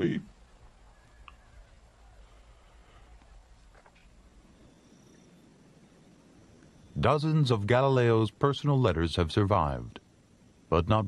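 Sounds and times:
man's voice: 0.0 - 0.3, 7.0 - 10.0, 10.7 - 11.0.

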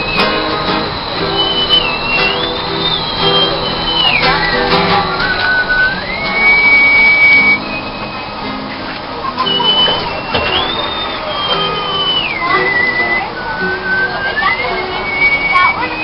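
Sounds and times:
acoustic guitars playing: 0.0 - 16.0.

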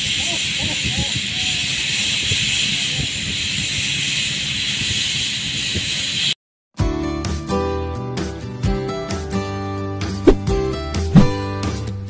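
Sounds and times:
paint spray gun hissing: 0.0 - 6.4.

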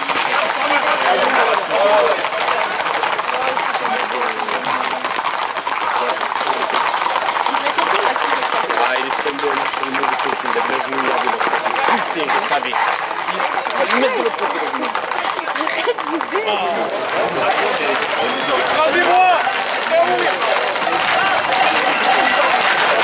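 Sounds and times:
horse hooves on asphalt: 0.0 - 23.0
running feet on asphalt: 0.0 - 23.0
voices shouting and chattering: 0.0 - 23.0.

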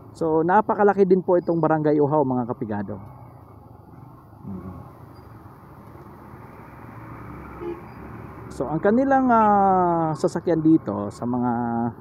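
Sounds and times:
traffic engine hum and road noise: 0.0 - 12.0.

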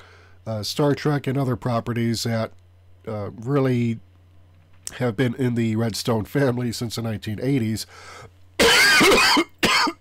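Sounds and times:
man coughing: 8.6 - 10.0.

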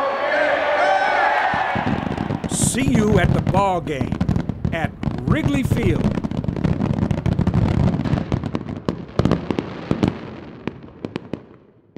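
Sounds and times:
fireworks crackling pops: 1.5 - 11.7.

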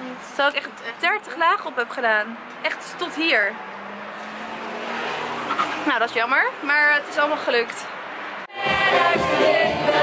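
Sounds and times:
car driving past: 3.4 - 7.2.

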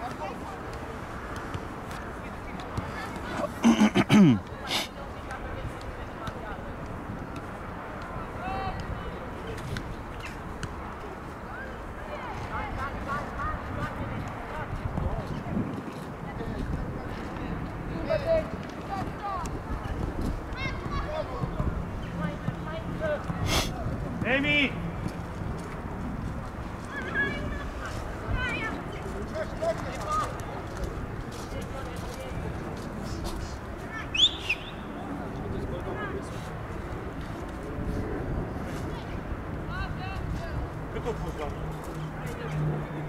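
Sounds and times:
wind rumbling on microphone: 12.0 - 43.0
players shouting and calling: 26.8 - 30.6.

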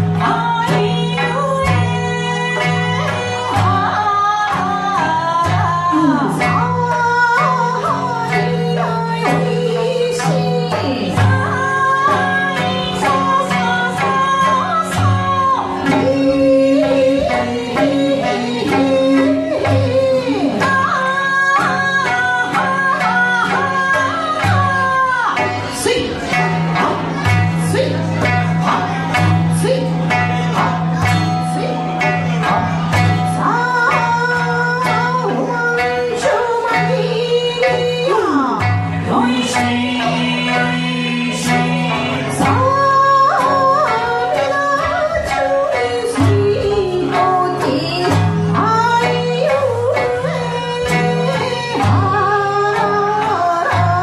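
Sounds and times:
strummed acoustic guitar: 0.0 - 37.3
plucked sanshin: 0.0 - 54.0
woman singing: 0.0 - 54.0.

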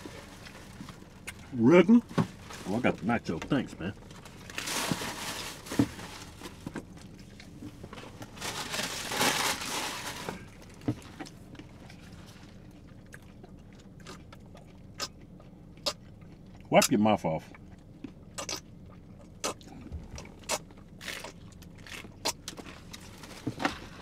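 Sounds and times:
quiet chewing with clicks: 10.6 - 23.1
crunching bites into taco shell: 19.4 - 23.1.

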